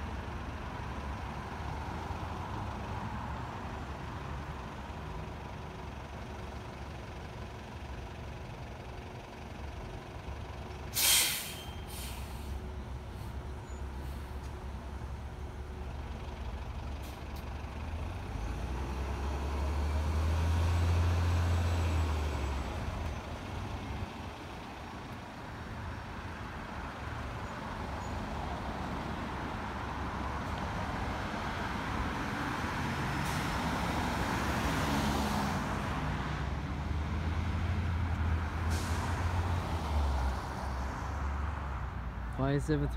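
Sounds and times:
bus engine rumble: 0:00.0 - 0:42.9
road traffic passing: 0:00.0 - 0:42.9.

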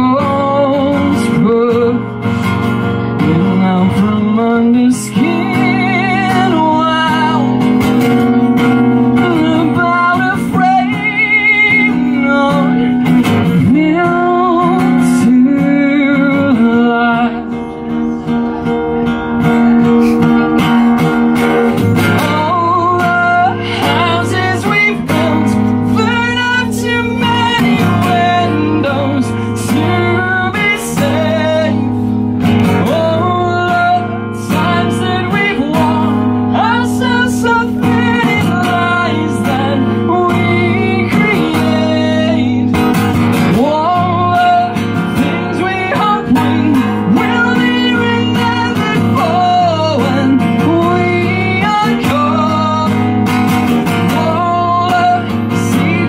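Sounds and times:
acoustic guitar strumming: 0:00.0 - 0:56.0
man singing with vibrato: 0:00.0 - 0:56.0.

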